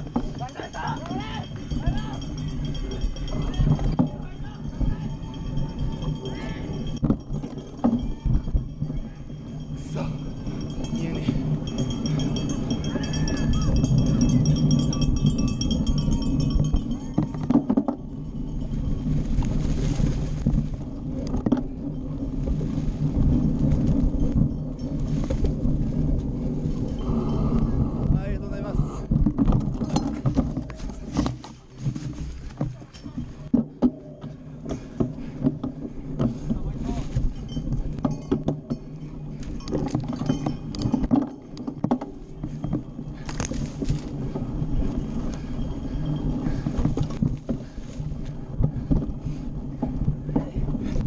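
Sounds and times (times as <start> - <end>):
bike rattling over rough dirt: 0.0 - 51.0
low riding rumble: 0.0 - 51.0.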